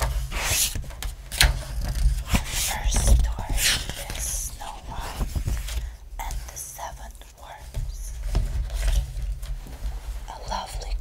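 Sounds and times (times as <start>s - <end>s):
woman whispering: 2.2s - 5.5s, 6.2s - 8.2s, 10.3s - 11.0s.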